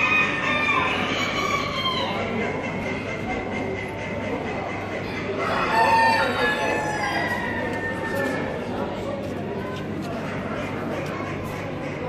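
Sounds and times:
large hall background noise: 0.0 - 12.0
rooster crowing: 5.4 - 8.4.

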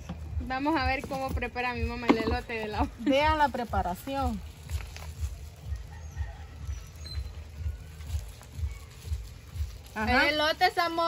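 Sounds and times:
faint handling sounds: 3.9 - 6.0.

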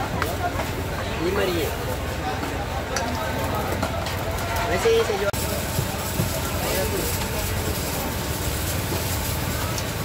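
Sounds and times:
gas burner roaring: 0.0 - 10.0
steam escaping: 3.4 - 10.0.

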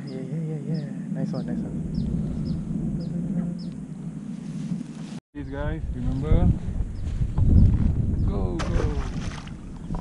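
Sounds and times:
wind rumbling on microphone: 0.0 - 10.0
high falling bird chirps: 1.8 - 4.0.

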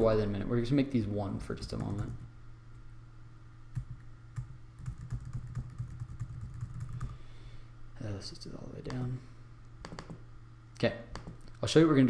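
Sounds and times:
steady low hum: 0.0 - 12.0
computer keyboard typing: 1.7 - 2.2, 3.8 - 7.2, 9.8 - 10.2.

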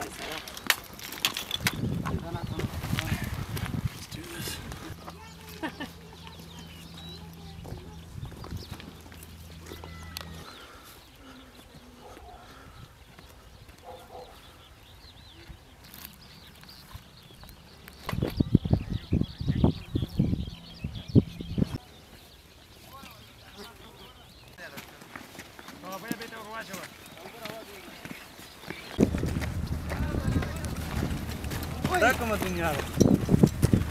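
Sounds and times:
footsteps on dirt track: 0.0 - 18.5, 21.8 - 33.9
gear rattling: 29.0 - 33.9
low steady hum: 29.0 - 33.9.

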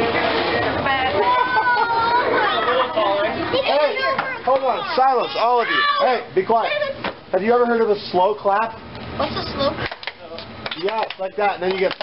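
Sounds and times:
voices talking and calling out: 0.0 - 12.0.

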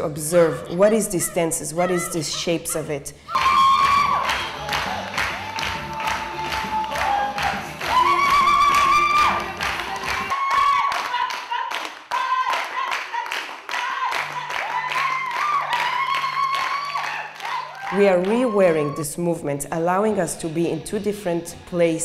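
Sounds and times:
rhythmic hand-clapping: 3.3 - 18.6
low backing music: 17.8 - 22.0.

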